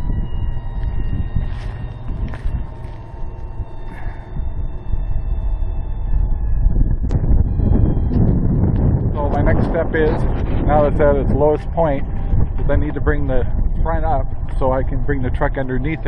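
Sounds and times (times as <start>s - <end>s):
electric jack motors whining: 0.0s - 9.1s
wind on microphone: 0.0s - 16.0s.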